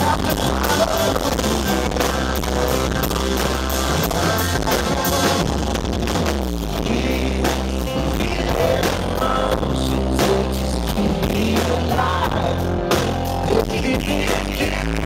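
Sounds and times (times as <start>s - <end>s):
drums: 0.0s - 15.0s
heavy steady bass: 0.0s - 15.0s
live band music through speakers: 0.0s - 15.0s.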